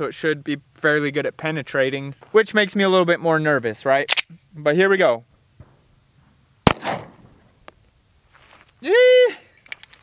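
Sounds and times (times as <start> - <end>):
pistol shot with echo: 6.6 - 7.3.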